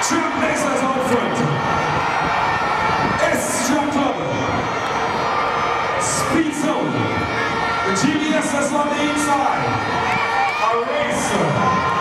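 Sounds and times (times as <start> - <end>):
crowd cheering and shouting: 0.0 - 12.0.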